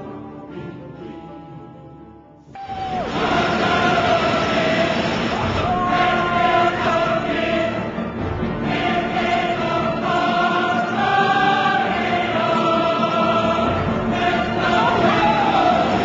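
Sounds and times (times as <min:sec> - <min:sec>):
choir singing held notes: 0:02.6 - 0:16.0.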